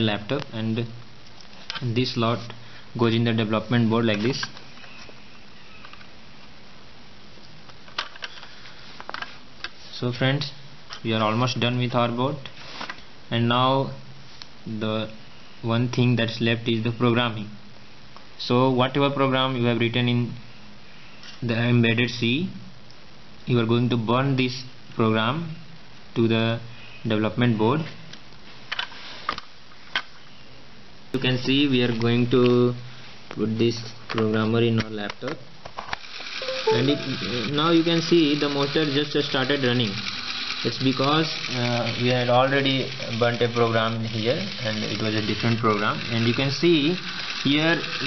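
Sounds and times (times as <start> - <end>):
steady background hiss: 0.0 - 48.0.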